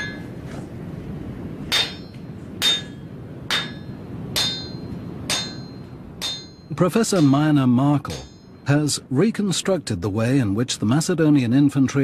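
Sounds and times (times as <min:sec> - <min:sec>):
metallic strikes ringing: 0:01.7 - 0:08.8.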